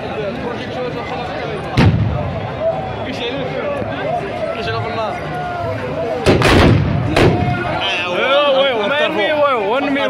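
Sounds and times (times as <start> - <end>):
crowd voices: 0.0 - 10.0
muskets firing volley: 1.8 - 2.5, 6.2 - 7.8.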